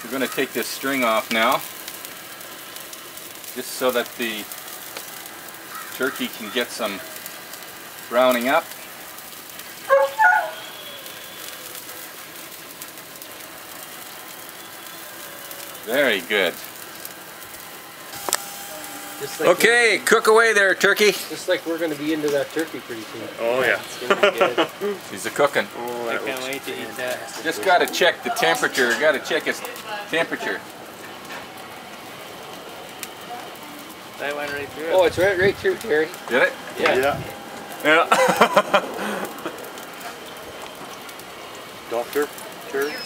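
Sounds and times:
barbecue hissing and sizzling: 0.0 - 43.0.

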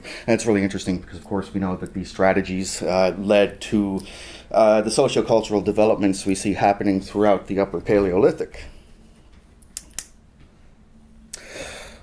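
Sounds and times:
faint room hum: 0.0 - 12.0
sharp clicks: 9.6 - 10.2.

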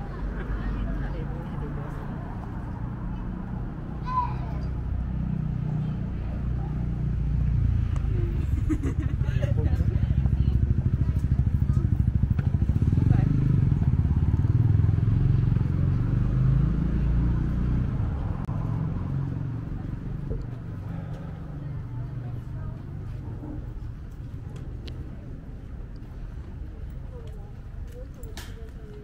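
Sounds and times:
passers-by talking: 0.0 - 29.0
vehicle engine pulsing rumble: 4.7 - 29.0.

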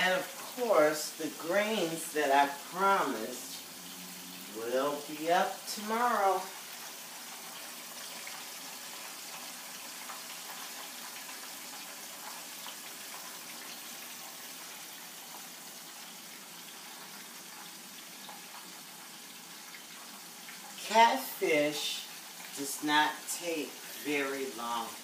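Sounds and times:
fish frying in oil: 0.0 - 25.0.

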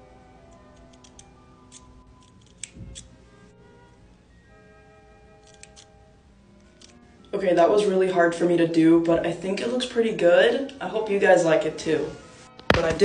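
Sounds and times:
soft background music: 0.0 - 13.0
scissors snipping hair: 0.6 - 3.2, 5.4 - 5.9, 6.6 - 7.0.

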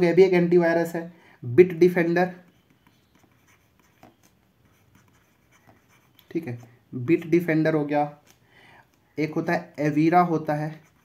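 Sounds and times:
stylus scratching on tablet: 1.7 - 6.9, 9.5 - 11.0.

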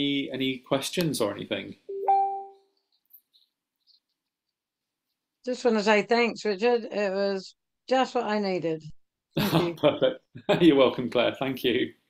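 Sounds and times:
two-note notification chime: 1.9 - 2.6.

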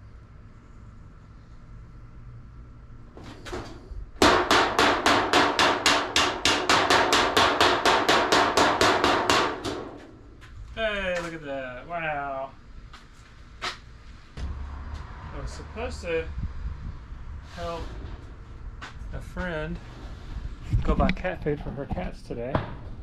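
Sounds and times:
hammer blows on sheet metal: 4.2 - 10.3, 14.4 - 18.4.

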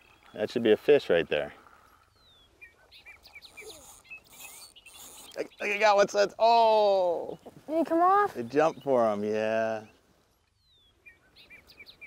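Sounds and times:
faint bird chirps: 1.9 - 5.9, 8.4 - 12.0.

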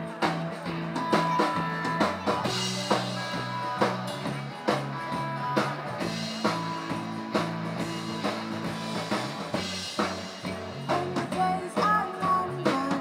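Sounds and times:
drum kit beat: 0.0 - 13.0
rock band playing live: 0.0 - 13.0
woman singing: 10.9 - 13.0.

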